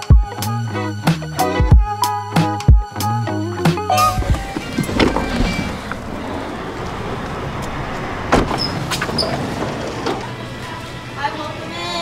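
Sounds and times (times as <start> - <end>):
cars in parking lot: 3.7 - 12.0.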